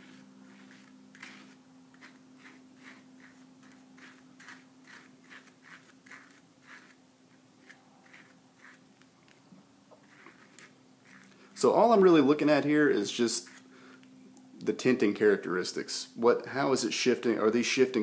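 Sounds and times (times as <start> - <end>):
palette knife scraping paint: 0.0 - 8.9, 10.0 - 11.4, 13.4 - 13.6
steady low hum: 0.0 - 17.7.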